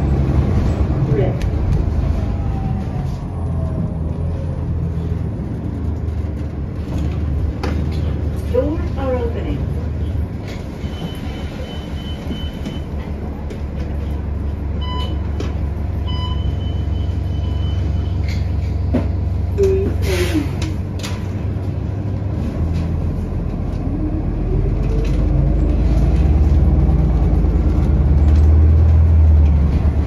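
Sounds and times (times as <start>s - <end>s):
bus drivetrain drone: 0.0s - 30.0s.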